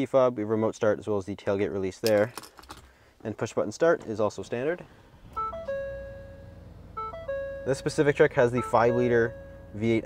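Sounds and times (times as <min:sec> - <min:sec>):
car engine idling: 0:04.0 - 0:10.0
descending electronic chime: 0:05.4 - 0:10.0.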